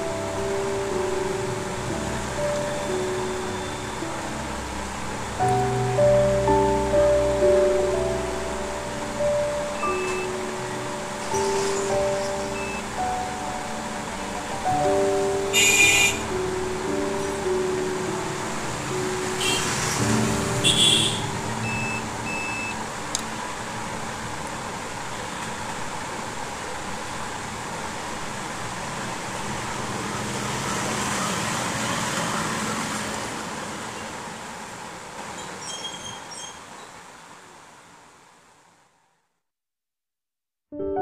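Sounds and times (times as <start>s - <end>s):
faint steady tones: 0.0s - 19.2s
steady rushing noise: 0.0s - 30.6s.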